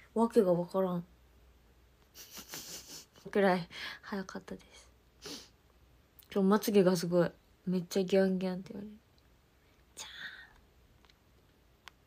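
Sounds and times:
woman whispering breathily: 10.0 - 10.6.

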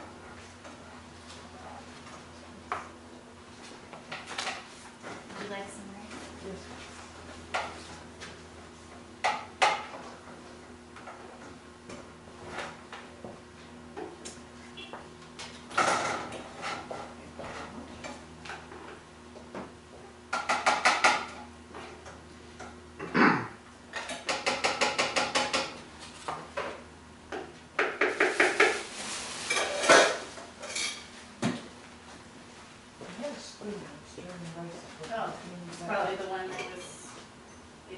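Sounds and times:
kitchen clatter: 27.8 - 31.6
utensil scraping in a pan: 28.1 - 31.1.

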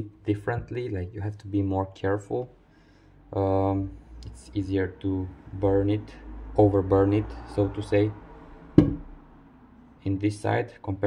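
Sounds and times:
knock on wooden box: 8.8 - 9.1.

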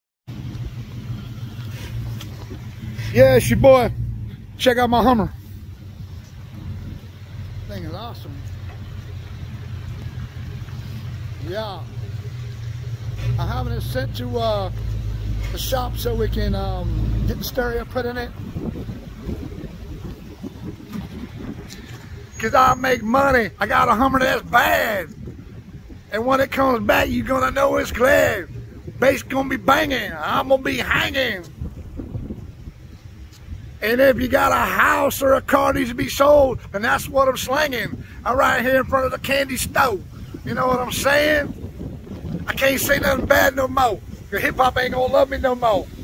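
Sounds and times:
faint outdoor background noise: 0.3 - 46.0
steady low rumble: 0.3 - 46.0
wind buffeting microphone: 0.3 - 46.0.

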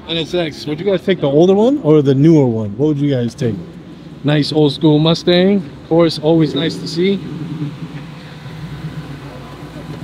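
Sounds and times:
car engine passing slowly: 0.2 - 10.0.

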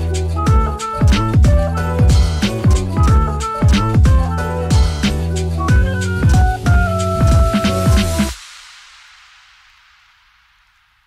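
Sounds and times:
faint hiss: 7.5 - 11.0.

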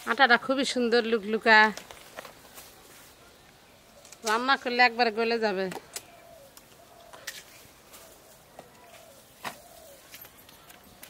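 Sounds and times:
bird cooing: 6.0 - 10.3.

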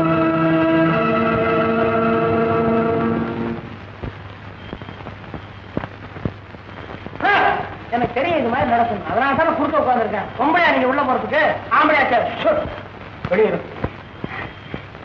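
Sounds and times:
organ-like chords: 0.0 - 3.9.

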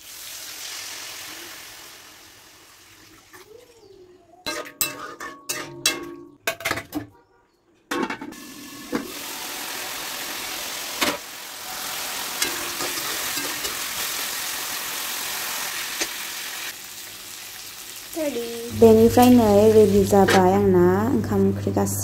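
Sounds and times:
chicken sizzling in a wok: 0.0 - 3.3, 8.4 - 20.3.

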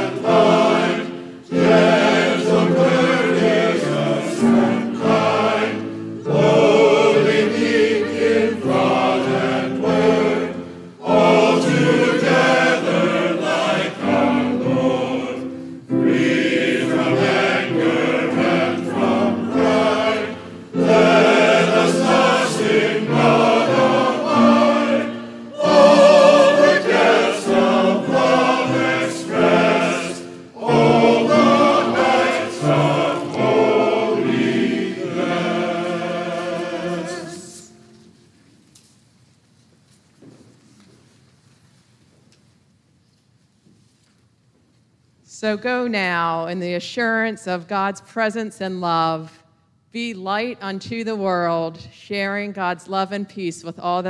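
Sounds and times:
choir singing a hymn: 0.0 - 38.1.

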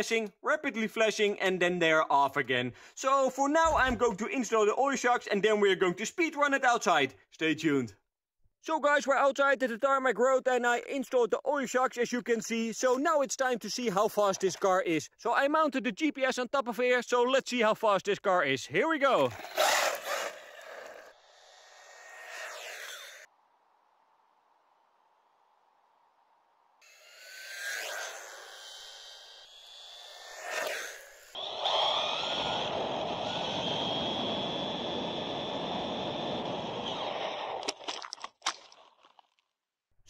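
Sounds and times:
rc car motor whine: 19.2 - 23.3, 26.8 - 37.6.

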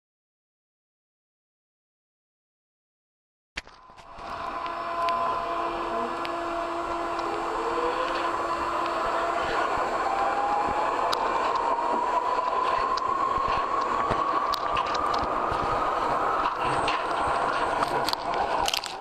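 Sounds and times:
whining tones: 3.6 - 19.0
train running noise: 3.7 - 19.0
small clicks: 17.8 - 19.0.

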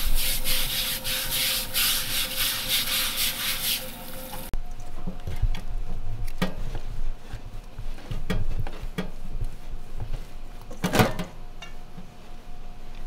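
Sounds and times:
gritty hand scrubbing in bowl: 0.0 - 4.5.

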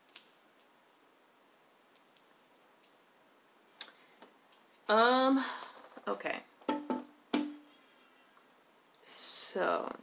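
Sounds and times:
card deck knocked on table: 6.7 - 7.6.

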